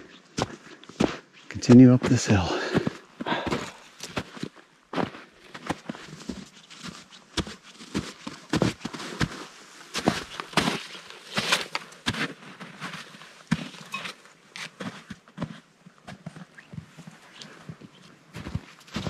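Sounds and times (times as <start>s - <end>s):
footsteps crunching in snow: 0.0s - 19.0s.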